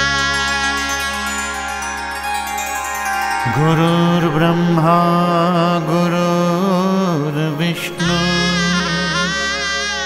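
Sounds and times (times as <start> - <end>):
soft instrumental backing: 0.0 - 10.0
man chanting: 3.5 - 10.0.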